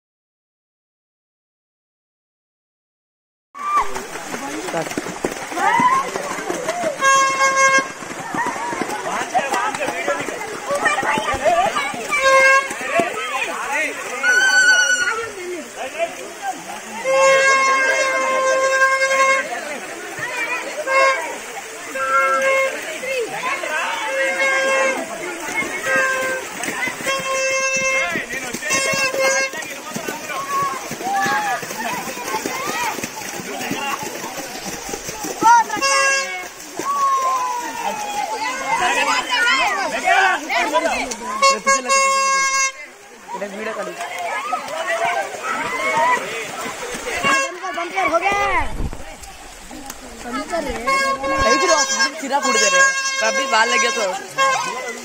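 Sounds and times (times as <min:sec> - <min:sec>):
small waterfall rushing: 0:03.6 - 0:55.0
voices talking: 0:03.8 - 0:55.0
boys shouting: 0:05.4 - 0:15.6, 0:20.2 - 0:34.2, 0:35.0 - 0:42.5, 0:43.3 - 0:48.7
horn-like tone: 0:06.9 - 0:08.1, 0:14.1 - 0:15.4, 0:17.0 - 0:19.7, 0:20.7 - 0:22.9, 0:23.9 - 0:29.6, 0:41.3 - 0:43.0, 0:50.8 - 0:55.0.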